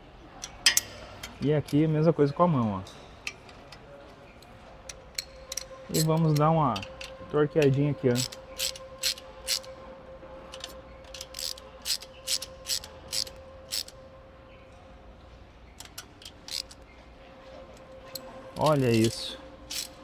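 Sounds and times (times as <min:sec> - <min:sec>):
faint steady hum: 0:00.0 - 0:20.0
ratchet wrench clicking: 0:08.2 - 0:09.7, 0:10.5 - 0:14.0, 0:15.8 - 0:16.8, 0:18.6 - 0:20.0.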